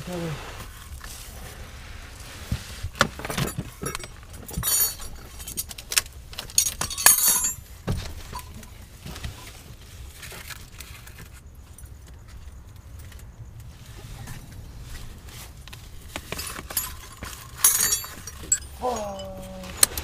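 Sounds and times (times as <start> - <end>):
faint handling of metal: 3.0 - 9.6, 15.6 - 20.0
metal wrenches clinking: 3.2 - 7.7, 16.1 - 20.0.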